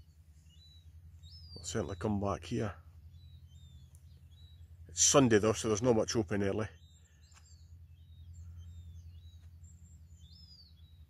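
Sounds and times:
steady low hum: 0.0 - 11.0
bird chirps and whistles: 3.1 - 4.6, 6.8 - 11.0.

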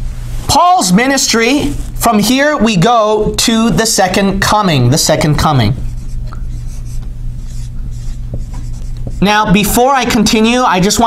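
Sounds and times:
steady low hum: 0.0 - 11.0
marker squeaking on a whiteboard: 5.8 - 10.2.

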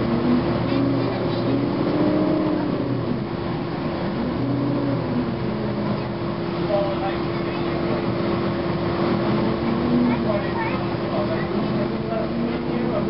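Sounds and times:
bus diesel engine hum: 0.0 - 13.0.

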